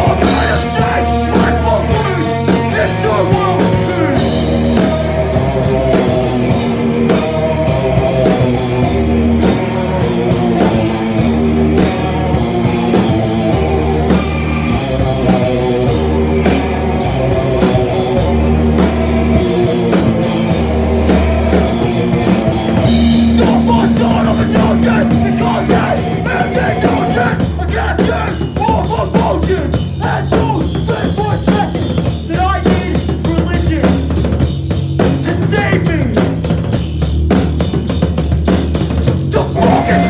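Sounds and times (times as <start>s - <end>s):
distorted electric guitar: 0.0s - 36.7s, 37.4s - 40.0s
bass guitar: 0.0s - 40.0s
drum-kit beat: 0.0s - 40.0s.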